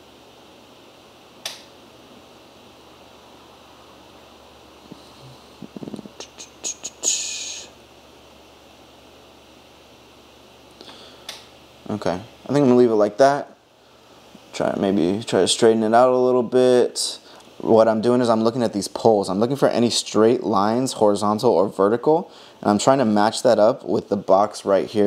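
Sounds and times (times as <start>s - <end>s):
steady low hum: 0.0s - 25.0s
short breathy hiss: 4.8s - 7.8s, 10.7s - 11.5s.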